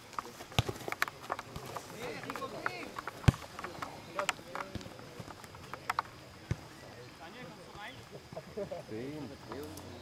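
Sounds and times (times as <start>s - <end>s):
ball being kicked: 0.5s - 5.0s.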